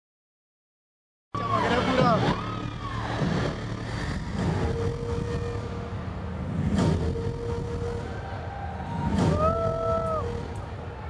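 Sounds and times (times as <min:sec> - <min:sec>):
stadium concert crowd recording: 0:03.1 - 0:11.0.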